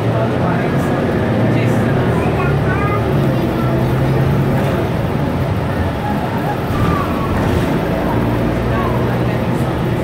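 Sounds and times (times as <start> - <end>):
bus engine drone: 0.0 - 10.0
road and cabin rumble: 0.0 - 10.0.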